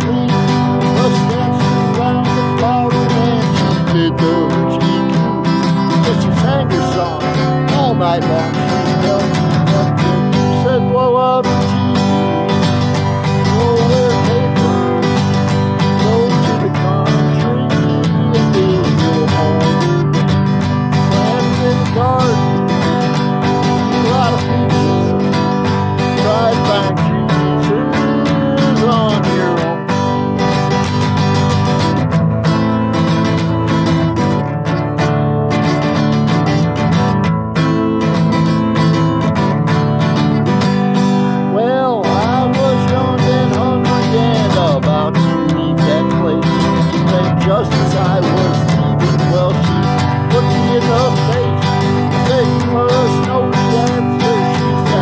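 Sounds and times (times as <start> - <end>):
acoustic guitar strumming: 0.0 - 55.0
man singing: 0.0 - 55.0.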